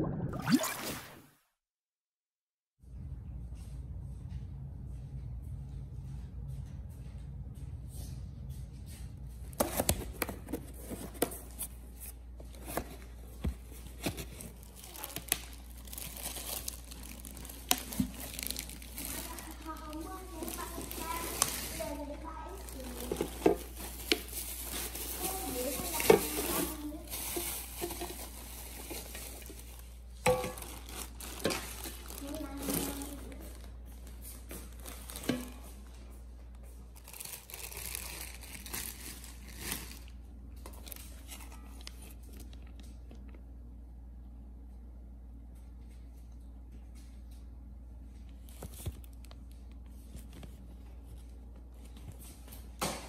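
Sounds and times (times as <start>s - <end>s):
plastic packaging crinkling: 12.4s - 42.8s, 48.3s - 52.2s.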